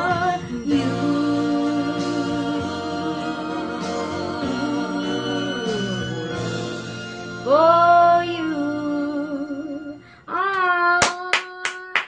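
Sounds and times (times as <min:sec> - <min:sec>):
hand claps: 0:10.5 - 0:12.0.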